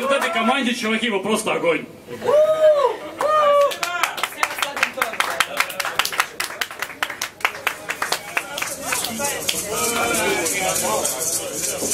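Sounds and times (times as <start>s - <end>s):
audience clapping: 3.2s - 10.2s
voices talking and calling out: 7.8s - 11.9s.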